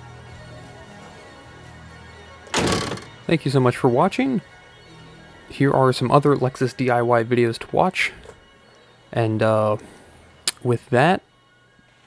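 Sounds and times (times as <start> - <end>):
faint background music: 0.0 - 12.0
car hood slammed shut: 2.5 - 3.1.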